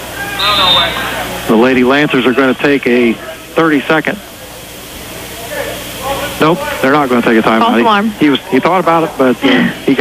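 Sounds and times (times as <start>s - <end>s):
crowd and room hiss: 0.0s - 10.0s.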